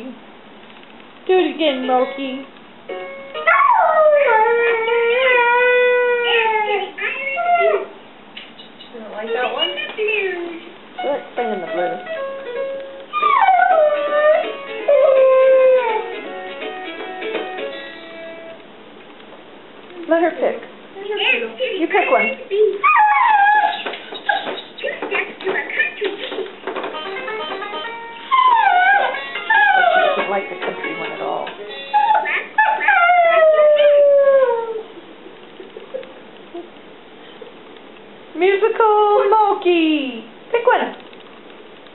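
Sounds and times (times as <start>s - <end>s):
musical toy tune: 1.7s - 3.6s, 26.9s - 31.9s
dog howling: 3.4s - 8.0s, 13.1s - 16.1s, 22.8s - 24.5s, 28.2s - 30.3s, 31.8s - 34.9s.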